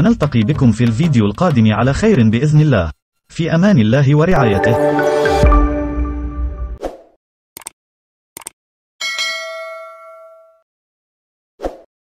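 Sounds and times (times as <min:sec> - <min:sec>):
small bell ringing: 0:09.0 - 0:10.6.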